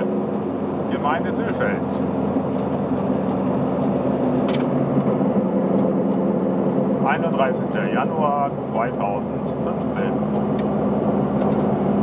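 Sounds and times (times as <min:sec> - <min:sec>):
road noise: 0:00.0 - 0:12.0
two-stroke car engine running: 0:00.0 - 0:12.0.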